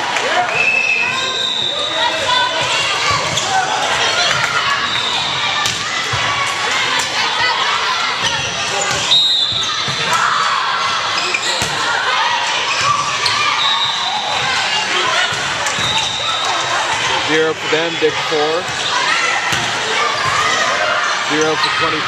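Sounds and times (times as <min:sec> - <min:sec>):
crowd chatter in a hall: 0:00.0 - 0:22.0.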